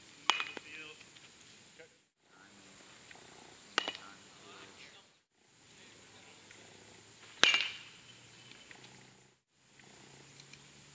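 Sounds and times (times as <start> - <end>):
baseball bat cracking ball: 0.2 - 0.8, 3.7 - 4.3, 7.2 - 8.7.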